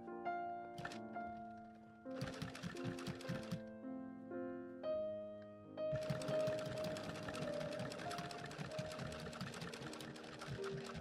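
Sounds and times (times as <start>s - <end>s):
background music: 0.0s - 11.0s
sewing machine stitching: 0.8s - 1.0s, 2.2s - 3.6s, 5.9s - 11.0s.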